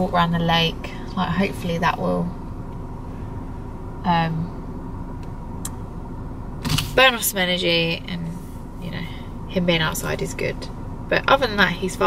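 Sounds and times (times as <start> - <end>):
car cabin hum: 0.0 - 12.0.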